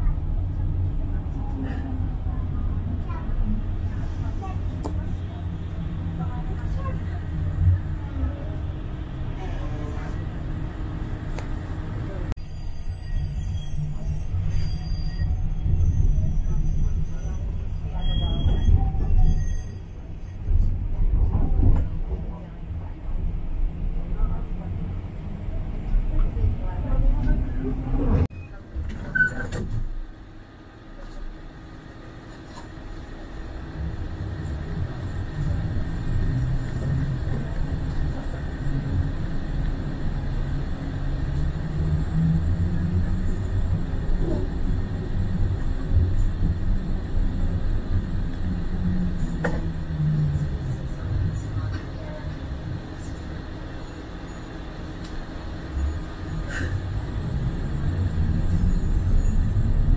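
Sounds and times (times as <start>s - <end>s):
voices: 0.0s - 12.3s, 21.1s - 29.2s, 42.4s - 59.5s
rail car rumble from inside: 0.0s - 59.9s.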